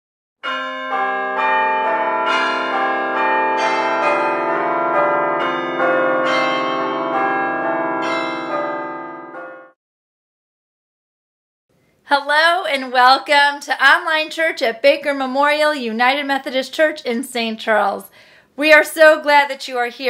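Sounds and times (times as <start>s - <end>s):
bells ringing in a peal: 0.4s - 9.8s.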